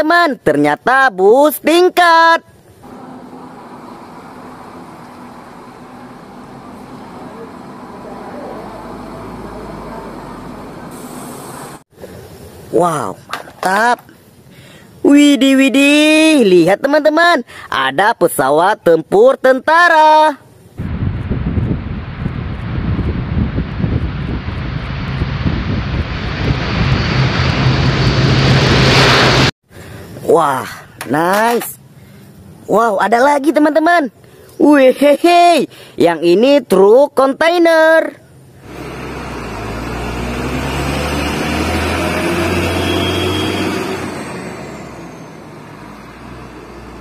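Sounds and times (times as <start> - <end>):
traffic noise: 2.6 - 13.6, 38.2 - 47.0
diesel engine low hum: 2.7 - 12.6, 20.7 - 30.0, 38.4 - 47.0
turboprop plane taking off: 2.8 - 11.8, 20.8 - 29.6, 38.6 - 47.0.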